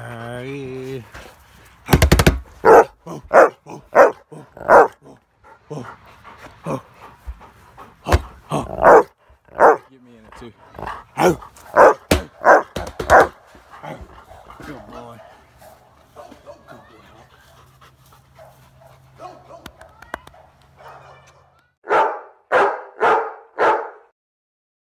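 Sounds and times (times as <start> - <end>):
dog barking: 2.6 - 5.0, 8.8 - 9.8, 11.2 - 13.4, 15.2 - 16.8, 18.4 - 24.1.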